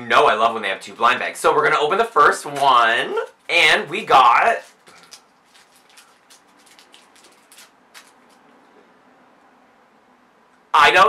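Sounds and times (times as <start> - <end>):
wrapper crinkling: 4.6 - 8.6.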